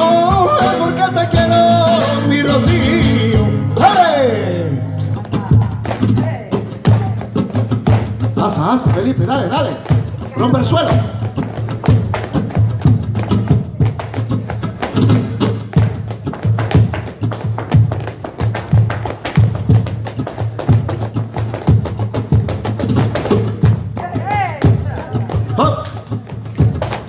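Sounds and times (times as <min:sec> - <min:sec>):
person calling out: 0:24.0 - 0:26.0.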